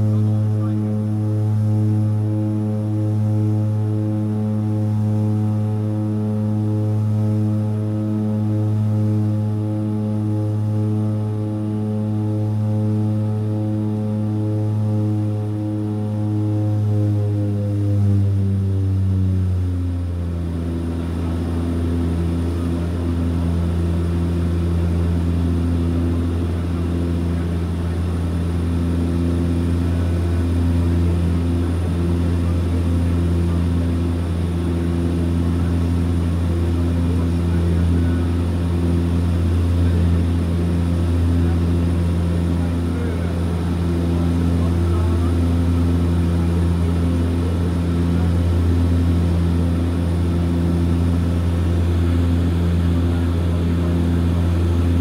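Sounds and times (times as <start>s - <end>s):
turboprop propeller hum: 0.0s - 55.0s.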